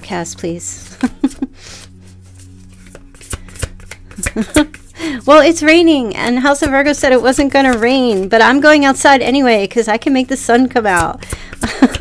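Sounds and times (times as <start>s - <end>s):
cards being shuffled by hand: 0.8s - 12.0s
laughter: 1.0s - 1.5s, 4.2s - 4.7s, 11.6s - 12.0s
sharp card snaps and taps: 2.7s - 4.9s.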